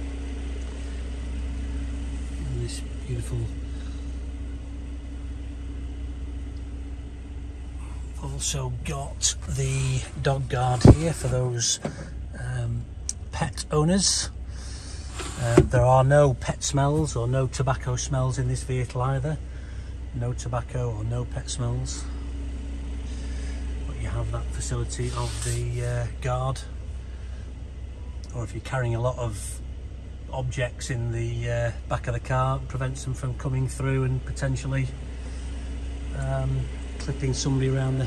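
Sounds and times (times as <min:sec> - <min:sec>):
car engine idling: 0:00.0 - 0:38.0
constant hum: 0:00.0 - 0:38.0
steady low rumble: 0:00.0 - 0:38.0.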